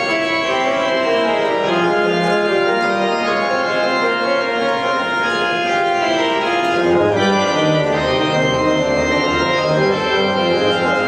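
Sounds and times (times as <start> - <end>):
organ playing slow chords: 0.0 - 11.0.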